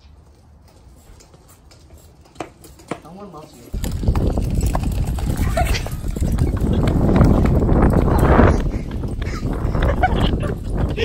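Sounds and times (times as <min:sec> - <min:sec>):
wagon wheels rolling on asphalt: 0:00.0 - 0:11.0.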